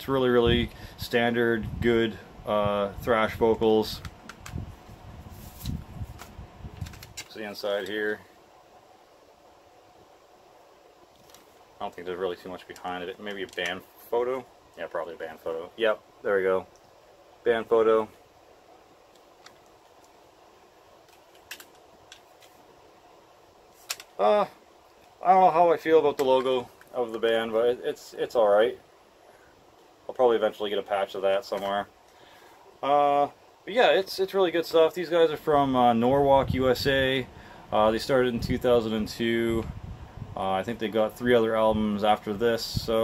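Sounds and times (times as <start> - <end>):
faint room hum: 0.0 - 43.0
plastic case clicks and rustles: 21.1 - 22.6, 23.8 - 24.2.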